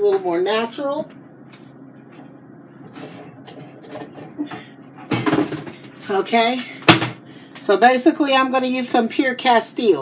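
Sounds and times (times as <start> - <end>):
items knocking and shuffling in cabinet: 2.8 - 7.2.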